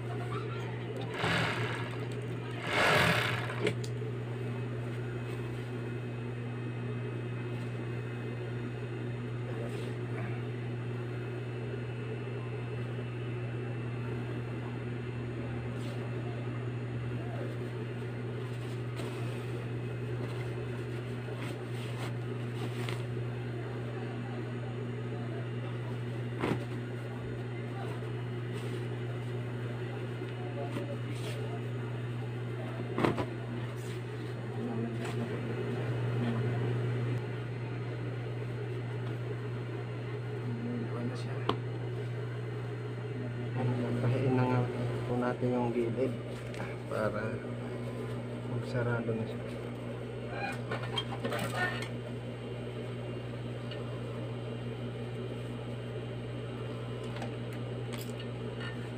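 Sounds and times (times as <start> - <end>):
sewing machine motor humming: 0.9 - 4.0.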